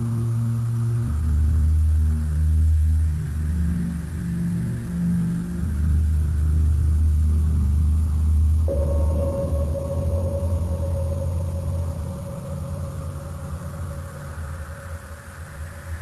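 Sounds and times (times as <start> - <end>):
high steady tone: 8.7 - 15.2
deep sustained ident music notes: 8.7 - 16.0.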